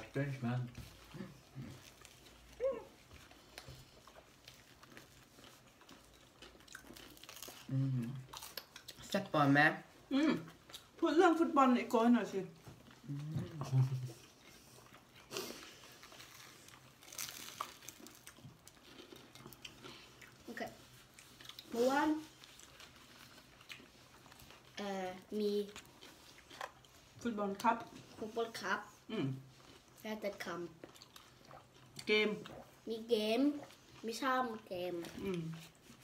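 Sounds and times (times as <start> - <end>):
chewing and crunching food: 0.0 - 36.0.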